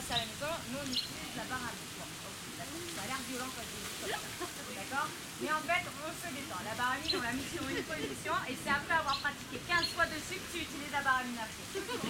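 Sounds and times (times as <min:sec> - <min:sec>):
people talking in background: 0:00.0 - 0:12.0
steady hiss: 0:00.0 - 0:12.0.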